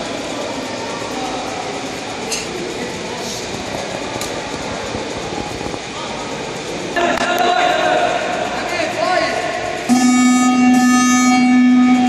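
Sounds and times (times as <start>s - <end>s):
faint indistinct voices: 0.0s - 12.0s
sports hall background noise: 0.0s - 12.0s.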